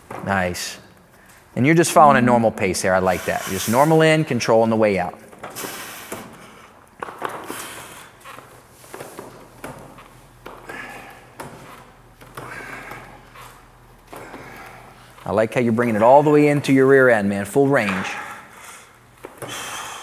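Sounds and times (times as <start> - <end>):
person breathing: 10.6 - 11.8, 12.4 - 15.2, 17.9 - 20.0.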